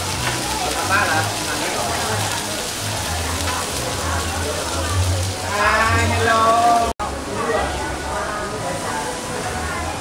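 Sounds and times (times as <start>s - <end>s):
crowd chatter: 0.0s - 10.0s
food sizzling on a griddle: 0.0s - 10.0s.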